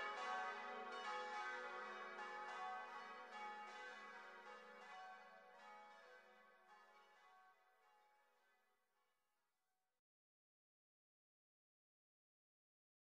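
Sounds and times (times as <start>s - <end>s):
church bells ringing: 0.0s - 7.4s.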